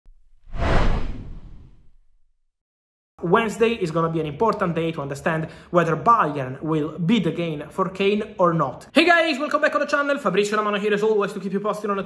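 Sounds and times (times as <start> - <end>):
whoosh with deep rumble: 0.1 - 2.3.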